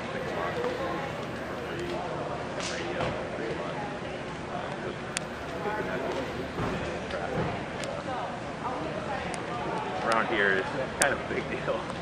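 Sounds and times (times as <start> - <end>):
indistinct background voices: 0.0 - 10.2.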